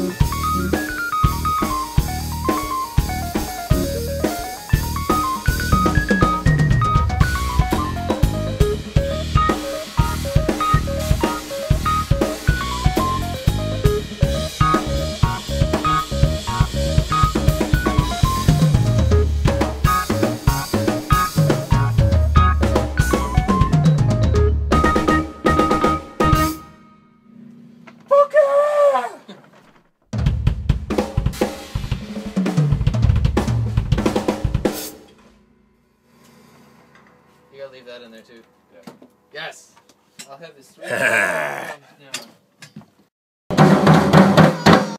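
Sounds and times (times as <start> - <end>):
drum kit played hard: 0.0 - 26.6, 30.1 - 35.0, 43.5 - 44.9
pitched backing music: 0.0 - 26.6.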